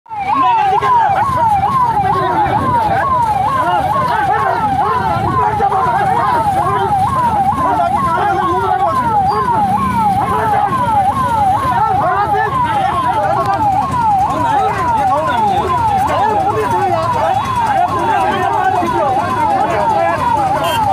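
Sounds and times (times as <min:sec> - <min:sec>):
crowd shouting: 0:00.1 - 0:20.9
electronic siren rising and falling: 0:00.1 - 0:20.9.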